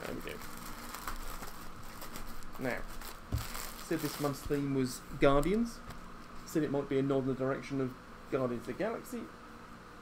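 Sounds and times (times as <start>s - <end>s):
plastic bag crinkling: 0.0s - 4.7s
person speaking: 3.8s - 9.3s.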